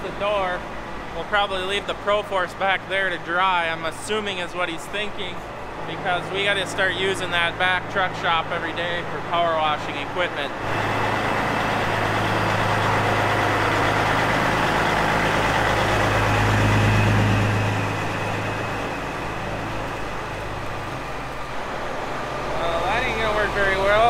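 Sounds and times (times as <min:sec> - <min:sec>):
diesel truck engine droning: 0:00.0 - 0:24.0.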